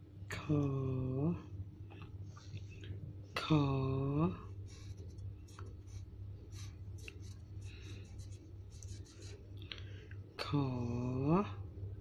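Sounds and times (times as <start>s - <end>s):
marker scratching on paper: 4.6s - 9.4s.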